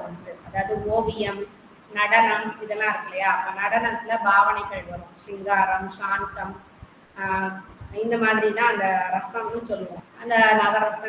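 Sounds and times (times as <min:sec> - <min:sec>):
woman lecturing: 0:00.0 - 0:11.0.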